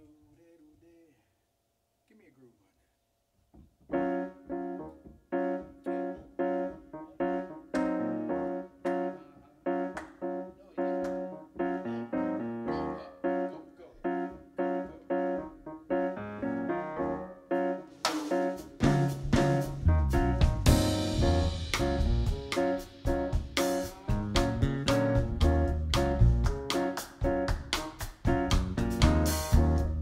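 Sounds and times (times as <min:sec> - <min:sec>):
piano jazz chords: 0:03.8 - 0:30.0.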